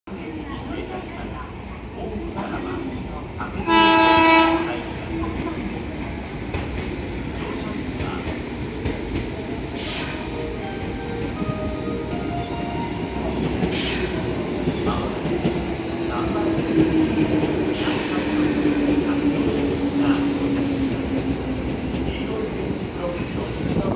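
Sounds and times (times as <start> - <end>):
train horn: 3.7 - 4.9.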